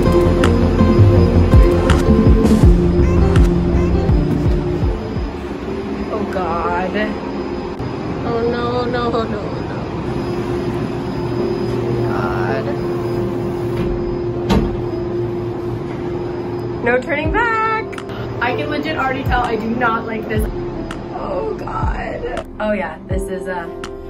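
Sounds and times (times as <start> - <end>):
cable car machinery hum: 0.0 - 23.6.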